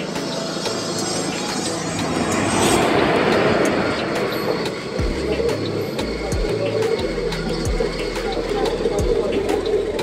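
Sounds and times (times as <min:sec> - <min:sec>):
train passing at speed: 0:00.0 - 0:10.0
wheels rumbling on rail: 0:00.0 - 0:10.0.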